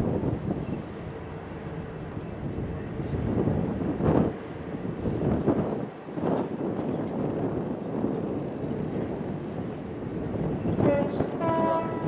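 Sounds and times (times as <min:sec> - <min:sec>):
ship's horn blast: 0:10.7 - 0:12.0.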